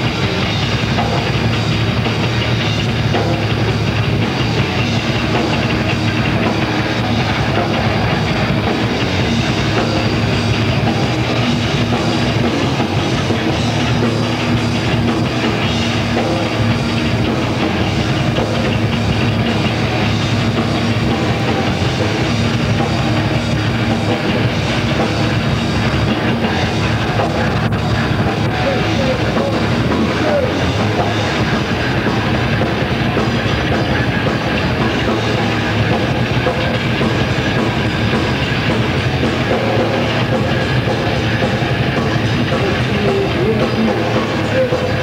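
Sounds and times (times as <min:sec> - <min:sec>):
distorted electric guitars: 0:00.0 - 0:45.0
fast drumming: 0:00.0 - 0:45.0
thrash metal band playing: 0:00.0 - 0:45.0.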